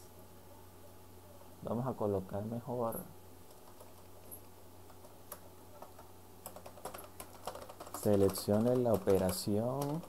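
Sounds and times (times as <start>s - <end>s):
computer keyboard keystrokes: 3.5s - 10.0s.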